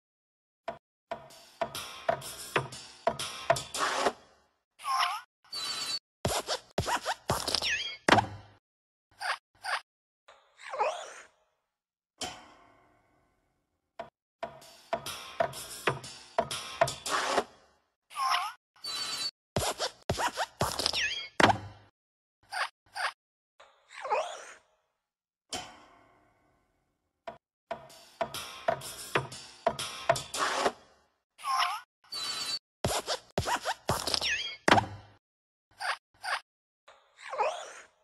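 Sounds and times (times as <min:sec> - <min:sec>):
cartoon knocks and scrapes: 0:01.6 - 0:04.2, 0:05.7 - 0:08.5, 0:15.0 - 0:17.6, 0:18.9 - 0:21.8, 0:28.2 - 0:30.9, 0:32.2 - 0:35.1
cartoon squeaks: 0:04.8 - 0:08.1, 0:18.1 - 0:21.4, 0:31.4 - 0:34.7.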